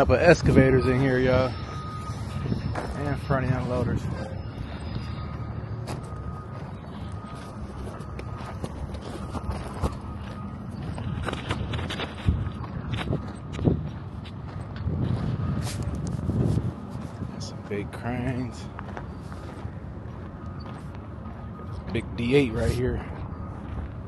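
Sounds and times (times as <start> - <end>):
wind buffeting microphone: 0.0 - 17.7
footsteps on gravel: 0.1 - 24.0.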